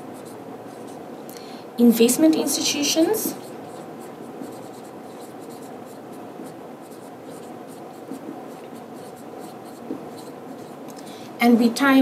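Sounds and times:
pen scratching on surface: 0.1 - 1.0, 3.4 - 10.8.

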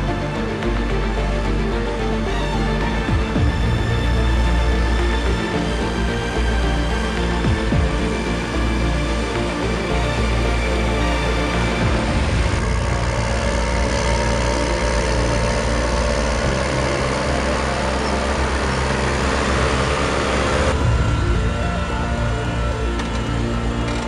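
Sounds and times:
tractor engine running under load: 0.0 - 24.0.

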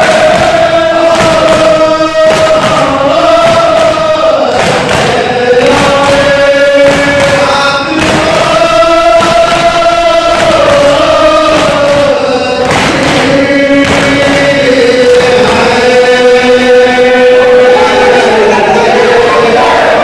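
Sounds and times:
hands slapping chests: 0.0 - 16.0
men chanting lament: 0.0 - 20.0.

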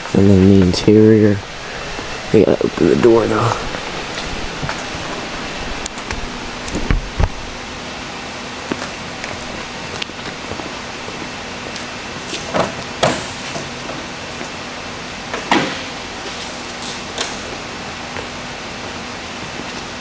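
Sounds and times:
steady hiss: 0.0 - 20.0.

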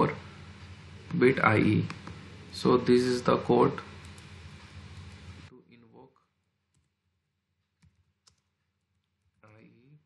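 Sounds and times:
computer keyboard keystrokes: 7.8 - 9.6.

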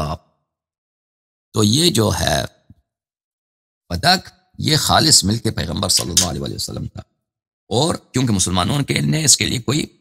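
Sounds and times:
man speaking: 3.9 - 7.1.

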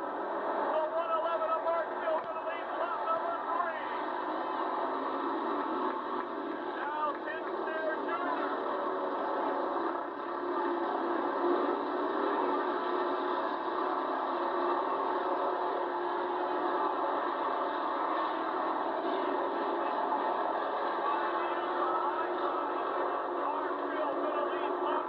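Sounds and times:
race car engines droning: 0.0 - 25.0.

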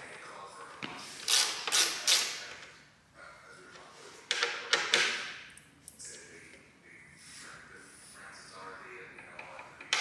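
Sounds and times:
screwdriver rasps: 1.2 - 2.4.

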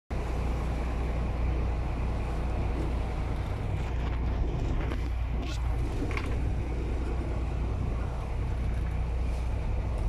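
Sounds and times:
boat engine rumbling: 0.1 - 10.0
water noise: 0.1 - 10.0
wind: 0.1 - 10.0.

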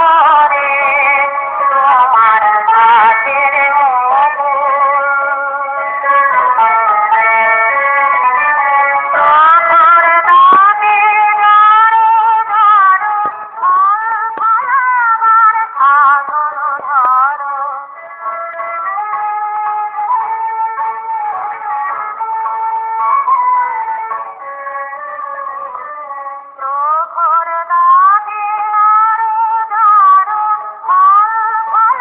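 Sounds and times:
light musical accompaniment: 0.0 - 32.0.

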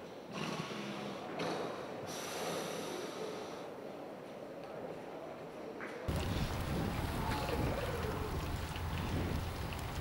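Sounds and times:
hissing breath: 2.1 - 3.7.

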